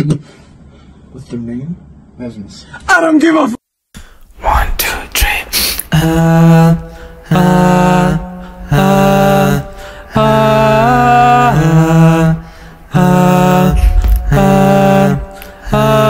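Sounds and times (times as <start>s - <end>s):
deep beatbox vocal notes: 13.7s - 15.7s.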